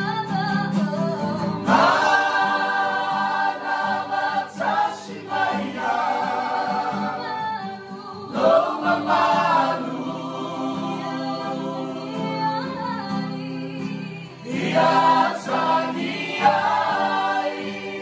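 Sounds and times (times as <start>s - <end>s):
choir singing a hymn: 1.6s - 13.1s, 13.8s - 18.0s.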